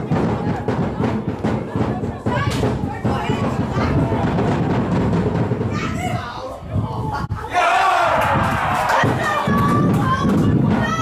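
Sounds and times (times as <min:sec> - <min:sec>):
crowd shouting and cheering: 0:07.0 - 0:11.0.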